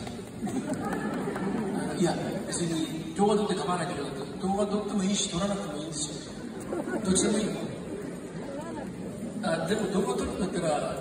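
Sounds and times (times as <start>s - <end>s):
audience chatter: 0.0s - 11.0s
man talking into microphone: 1.8s - 6.3s, 9.4s - 11.0s.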